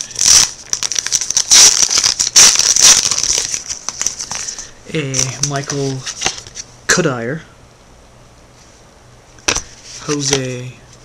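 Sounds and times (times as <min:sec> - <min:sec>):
card pack wrapper crinkling: 0:00.0 - 0:06.6, 0:09.5 - 0:10.6.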